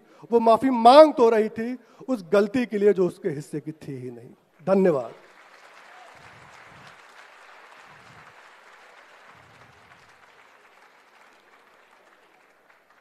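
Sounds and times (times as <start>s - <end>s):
audience applause: 5.2s - 13.0s.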